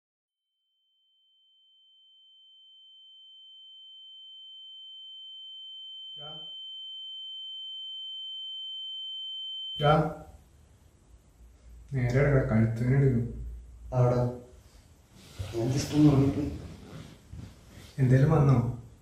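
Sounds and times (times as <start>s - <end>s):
high-pitched steady tone: 2.0s - 10.0s.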